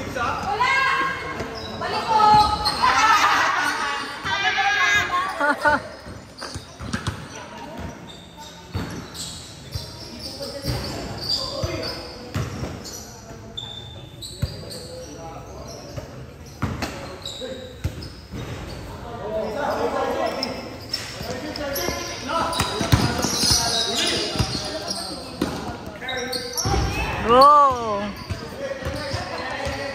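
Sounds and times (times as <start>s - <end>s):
basketball bouncing on court: 6.4s - 8.0s, 21.8s - 24.8s.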